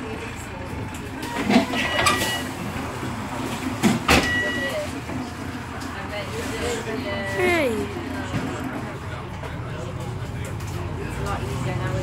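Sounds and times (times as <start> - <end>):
bus engine running: 0.0 - 12.0.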